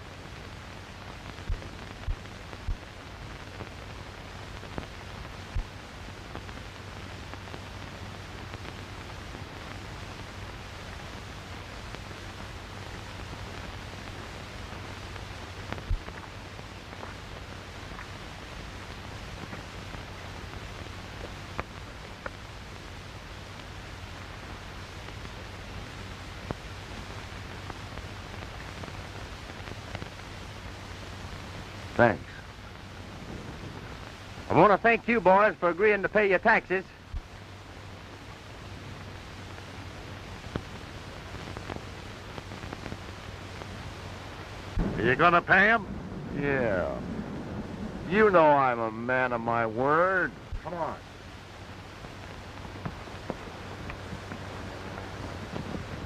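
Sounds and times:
faint crackles and pops: 0.0 - 56.0
film soundtrack hiss and hum: 0.0 - 56.0.

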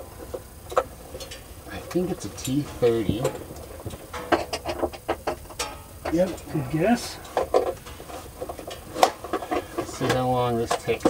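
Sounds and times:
rustling and handling noises: 0.0 - 11.0.

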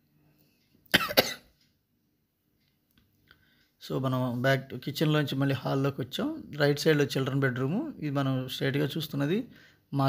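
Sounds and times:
man coughing: 0.9 - 1.5.

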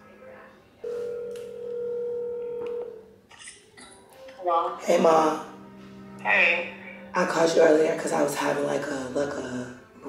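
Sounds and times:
phone ringback tone: 0.8 - 3.1.

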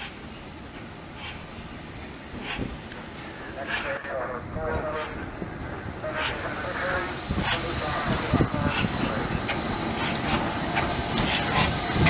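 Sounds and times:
steam locomotive beats: 0.0 - 12.0.

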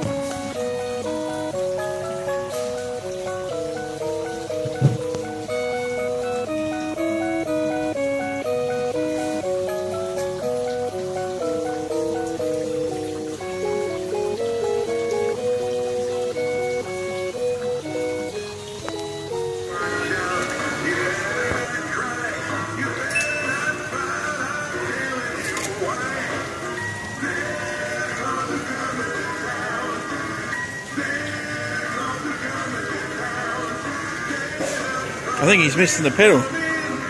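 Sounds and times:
electronic music-box tune: 0.0 - 21.5, 23.0 - 24.8
christmas music with singing: 0.0 - 37.0.

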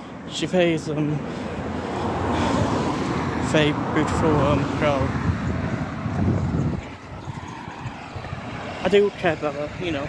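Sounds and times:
passing vehicle rumble: 0.2 - 10.0.

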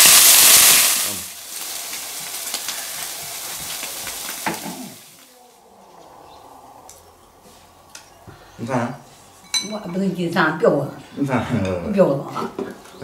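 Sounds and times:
greens and egg sizzling in wok: 0.0 - 5.5.

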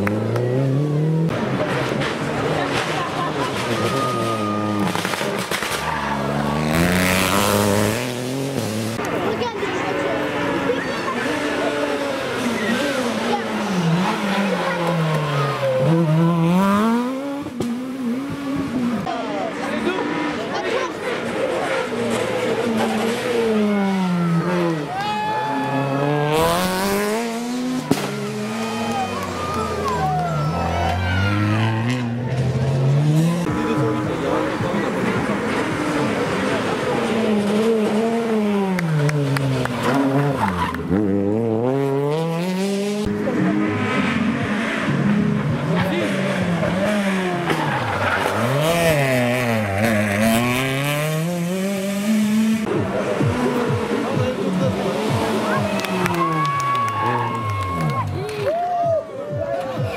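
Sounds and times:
rally car engines revving: 0.0 - 58.5.

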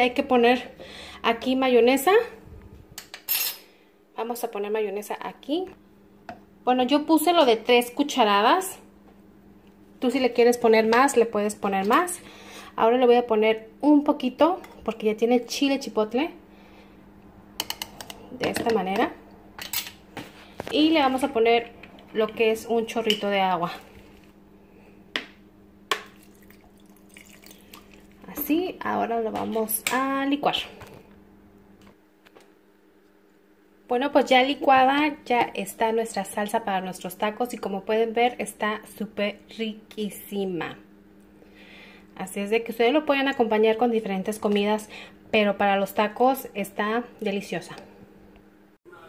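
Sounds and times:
faint steady hum: 0.0 - 49.0
water drips: 25.9 - 28.3.

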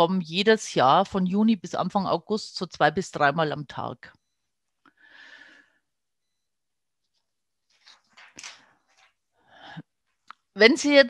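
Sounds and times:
faint breaths: 4.9 - 5.9
in-breath: 4.9 - 5.9, 8.5 - 9.9.

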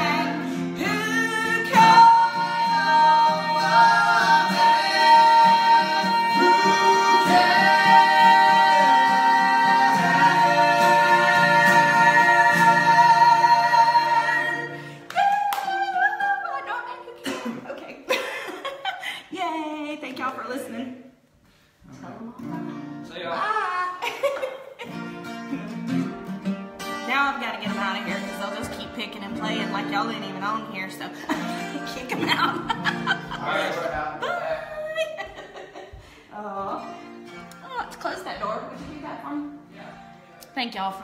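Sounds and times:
men singing along: 0.0 - 15.0
strummed acoustic guitar: 0.0 - 15.1, 22.4 - 23.4, 24.8 - 34.2, 36.7 - 41.0
woman singing: 0.0 - 17.1, 27.1 - 32.8.

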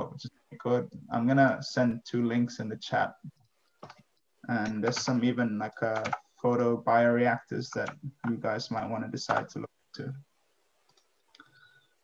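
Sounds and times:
faint computer clicks: 3.3 - 5.2, 5.8 - 6.4.

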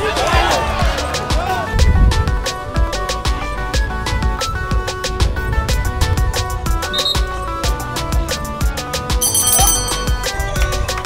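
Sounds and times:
background music with beat: 0.0 - 11.0
hand bell ringing: 9.2 - 11.0.

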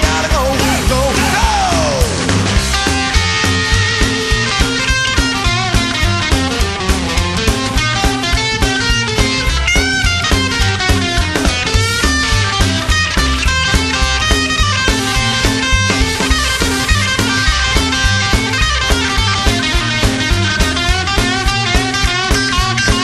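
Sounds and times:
electric guitar lead: 0.0 - 23.0
rock band playing: 0.0 - 23.0.

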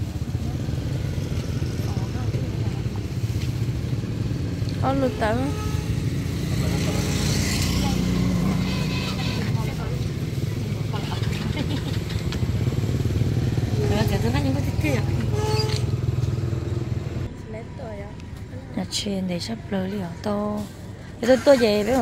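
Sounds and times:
people talking: 1.7 - 3.2, 4.8 - 5.8, 6.5 - 12.0, 13.8 - 15.4, 17.3 - 22.0.

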